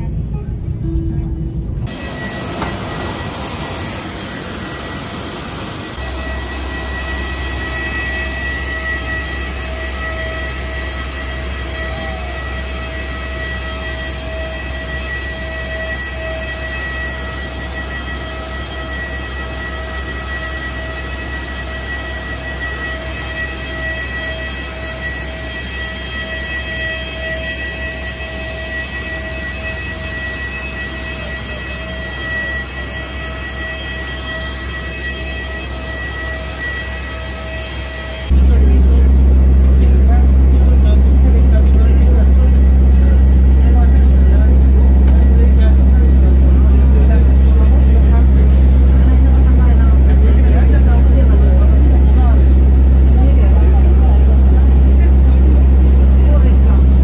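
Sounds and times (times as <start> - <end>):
low rumble: 0.0 - 12.9
jet turbine whine: 0.0 - 57.0.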